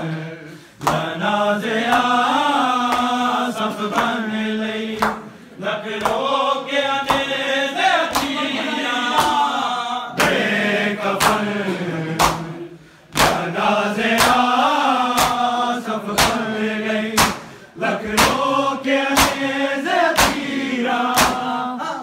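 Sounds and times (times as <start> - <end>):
men chanting a lament: 0.0 - 22.0
hands striking chests: 17.2 - 17.6.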